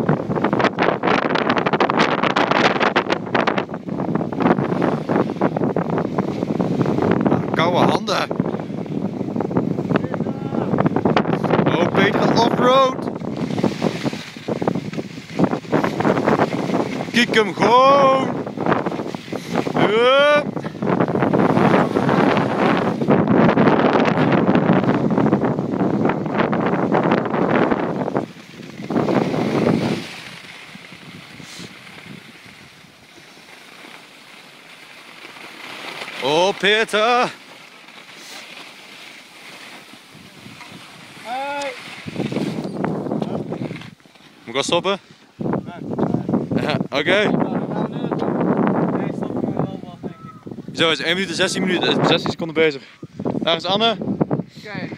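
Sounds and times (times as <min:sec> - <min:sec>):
wind buffeting microphone: 0:00.0 - 0:54.9
skis scraping on hard snow: 0:04.2 - 0:07.0, 0:11.8 - 0:45.0
scraping: 0:33.2 - 0:44.4.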